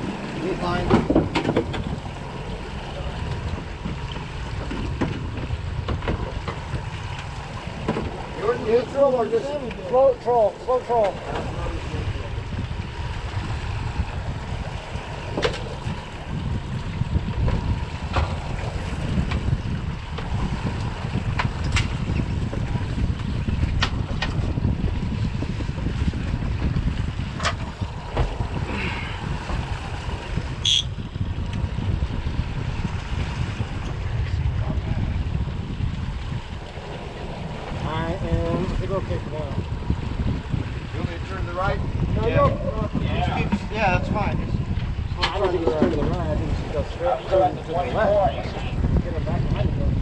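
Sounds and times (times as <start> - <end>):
outboard motors running: 0.0 - 50.0
water washing along hull: 0.0 - 50.0
wind on microphone: 0.0 - 50.0.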